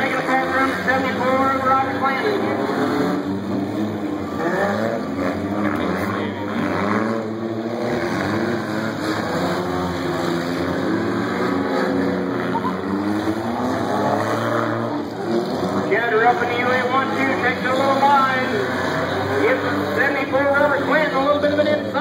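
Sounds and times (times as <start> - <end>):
car engines revving: 0.0 - 22.0.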